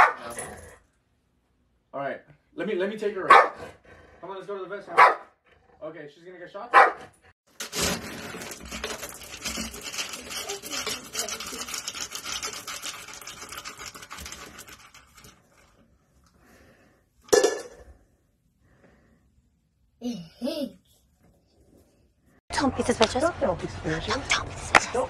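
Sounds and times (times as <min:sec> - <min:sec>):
dry kibble rattling in scoop: 0:07.5 - 0:15.6.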